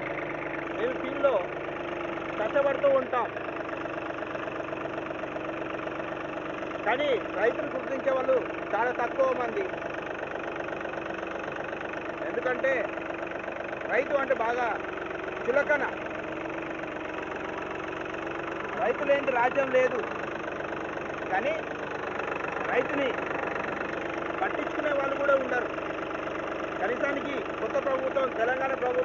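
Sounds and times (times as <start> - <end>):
engine running steadily: 0.0 - 29.0.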